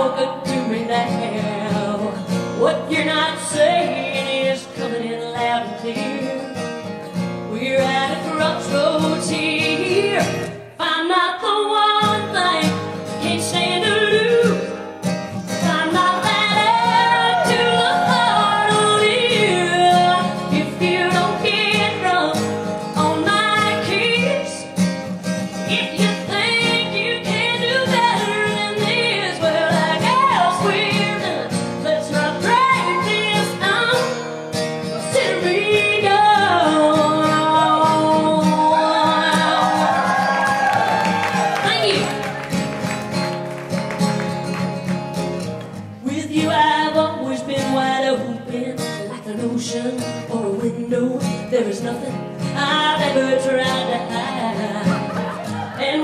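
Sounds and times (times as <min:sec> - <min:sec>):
woman singing country song: 0:00.0 - 0:43.2, 0:43.8 - 0:56.0
acoustic guitar: 0:00.0 - 0:56.0.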